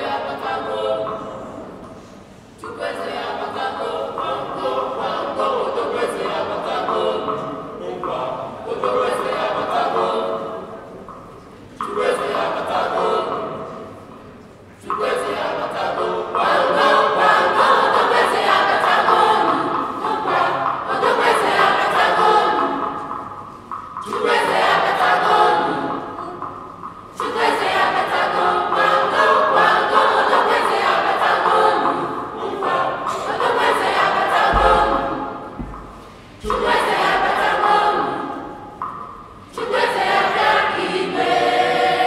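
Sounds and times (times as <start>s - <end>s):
children's choir singing: 0.0s - 42.0s.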